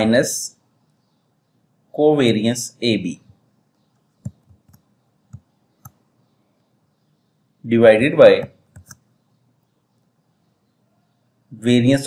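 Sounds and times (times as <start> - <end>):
mouse and keyboard clicks: 4.0 - 6.0, 8.4 - 9.1.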